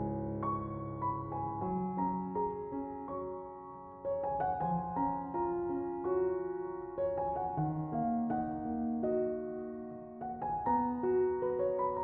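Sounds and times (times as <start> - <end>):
slow piano notes: 0.0 - 12.0.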